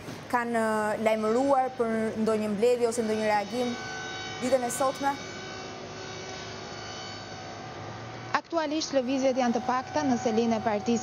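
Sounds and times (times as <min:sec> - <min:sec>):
background hum and hiss: 0:00.0 - 0:11.0
faint steady tones: 0:00.0 - 0:11.0.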